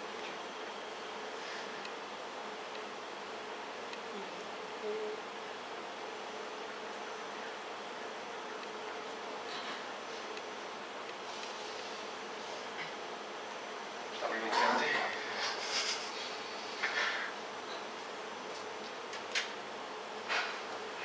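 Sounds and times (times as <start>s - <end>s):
faint buzzing drone: 0.0s - 18.8s
room hum: 0.0s - 21.0s.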